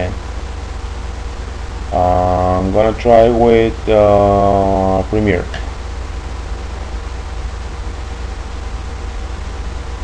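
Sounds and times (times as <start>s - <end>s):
low hum and rumble: 0.0s - 10.0s
steady hiss: 0.0s - 10.0s.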